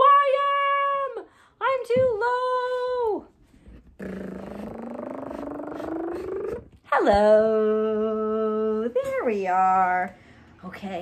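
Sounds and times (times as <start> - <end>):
person making rising buzzy sound: 4.0 - 6.8.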